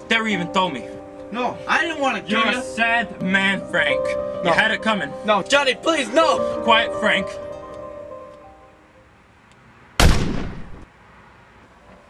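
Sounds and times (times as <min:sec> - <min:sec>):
loud gunshot: 0:10.0 - 0:10.9.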